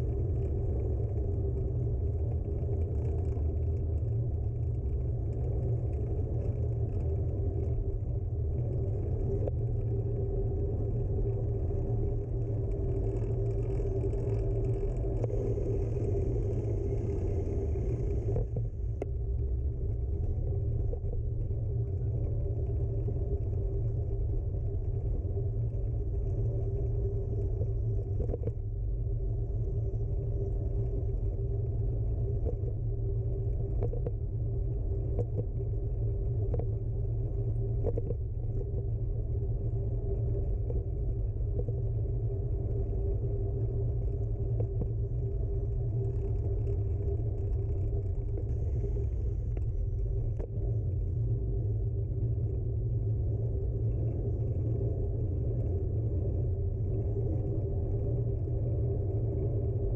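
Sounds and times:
steady hum: 0:00.0 - 0:59.9.

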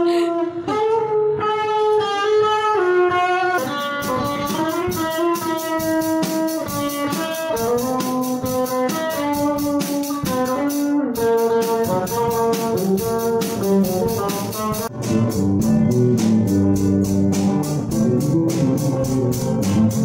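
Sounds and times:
electric guitar long held notes: 0:00.0 - 0:20.0
drum kit beat: 0:03.6 - 0:20.0.

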